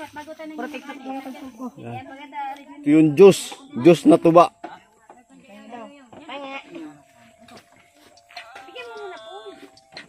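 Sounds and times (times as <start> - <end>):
people talking quietly: 0.0 - 10.0.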